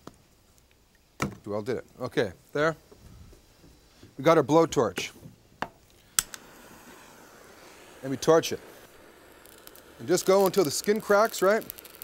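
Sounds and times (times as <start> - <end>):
gas blowtorch hissing: 6.0 - 12.0
blowtorch igniter click: 6.1 - 12.0.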